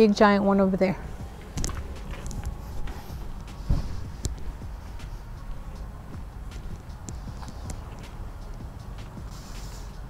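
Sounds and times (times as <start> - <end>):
footsteps walking: 1.1 - 9.2
light clicks and taps: 1.4 - 5.6.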